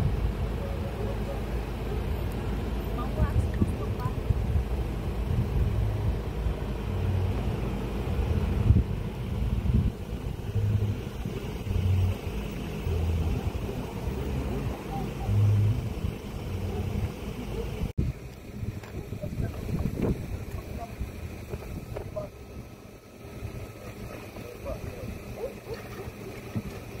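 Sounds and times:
vehicle engine idling: 0:00.0 - 0:27.0
faint voices: 0:00.3 - 0:04.4, 0:10.9 - 0:22.7, 0:23.3 - 0:26.8
wind on microphone: 0:03.0 - 0:27.0.

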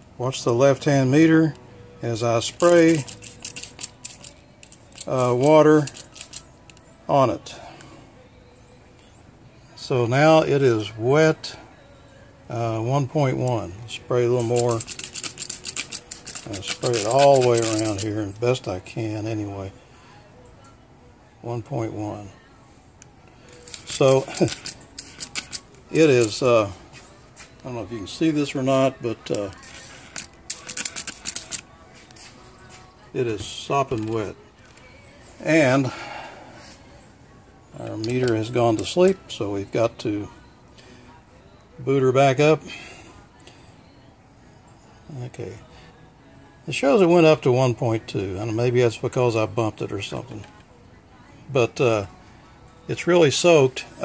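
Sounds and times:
spray bottle clicking and spritzing: 0:02.9 - 0:06.4, 0:14.5 - 0:18.0, 0:23.7 - 0:26.2, 0:29.6 - 0:31.6
spray bottle squirts: 0:29.7 - 0:31.6.

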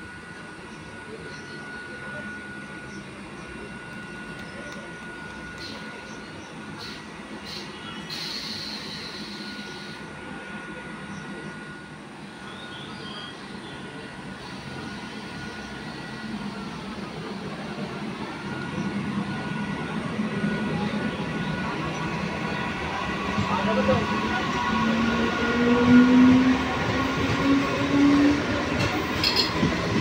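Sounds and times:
train running rumble: 0:00.0 - 0:30.0.

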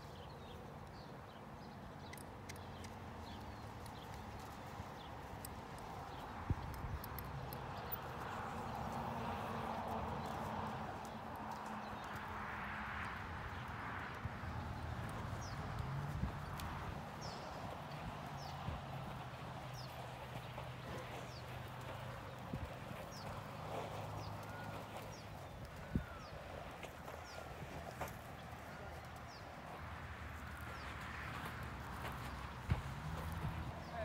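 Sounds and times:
hooves walking on sand: 0:00.0 - 0:34.0.

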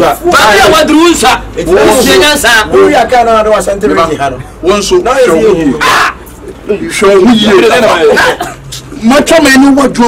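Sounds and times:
man speaking loudly: 0:00.0 - 0:10.0.

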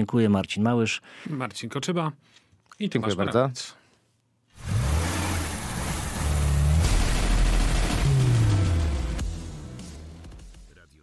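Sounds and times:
car engine: 0:04.6 - 0:10.4
music: 0:07.6 - 0:11.0.

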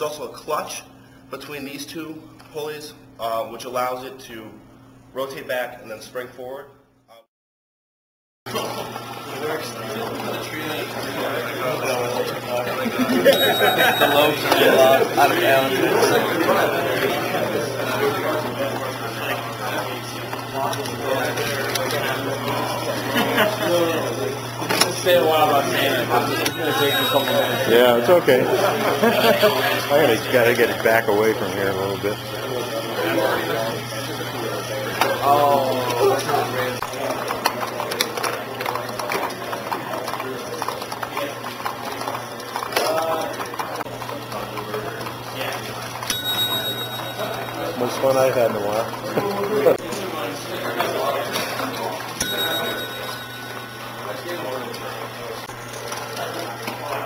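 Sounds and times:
indistinct voices talking: 0:08.5 - 0:57.0
high ringing tone: 0:13.2 - 0:16.2, 0:26.1 - 0:28.2, 0:46.1 - 0:48.5, 0:52.2 - 0:55.4
gears clicking and clattering: 0:36.8 - 0:46.9.

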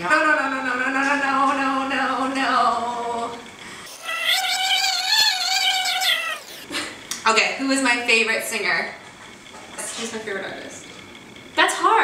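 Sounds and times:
woman squealing: 0:03.9 - 0:06.7.

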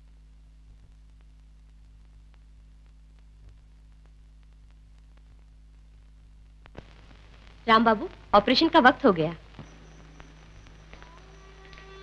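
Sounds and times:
film soundtrack hum and hiss: 0:00.0 - 0:12.0
faint film score with held notes: 0:08.8 - 0:12.0
small soundtrack clicks: 0:09.6 - 0:12.0.

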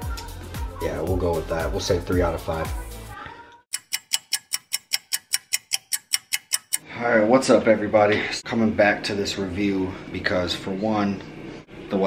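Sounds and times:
fast clock ticking: 0:03.7 - 0:06.8.

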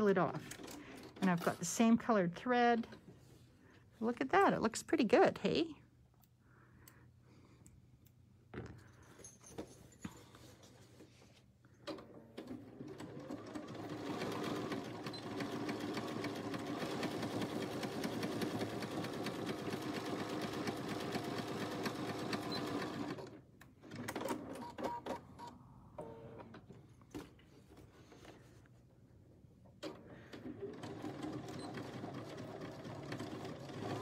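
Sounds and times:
sewing machine stitching: 0:11.9 - 0:25.0, 0:29.9 - 0:34.0.

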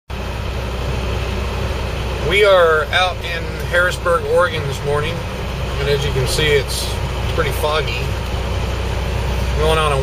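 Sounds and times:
engine and road rumble: 0:00.1 - 0:10.0.

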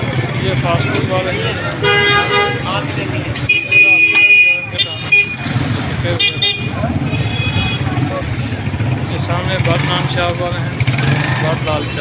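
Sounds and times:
vehicle engines running: 0:00.0 - 0:12.0.

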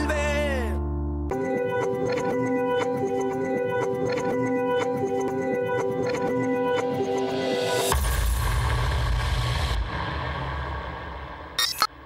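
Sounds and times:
deep boom with rushing hiss: 0:07.9 - 0:11.6.

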